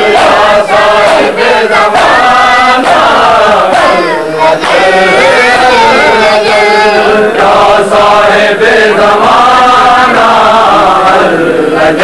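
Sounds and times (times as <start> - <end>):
men chanting together: 0.0 - 12.0.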